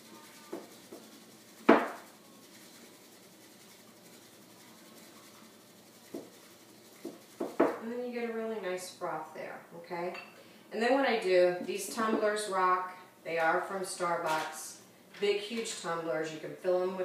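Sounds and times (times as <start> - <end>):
whisk scraping in ceramic bowl: 0.0 - 8.6.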